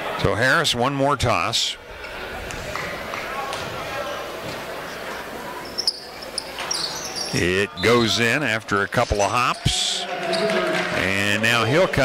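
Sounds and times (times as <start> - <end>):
crowd murmur: 1.7 - 12.0
sneakers squeaking: 4.4 - 8.2, 9.1 - 10.8.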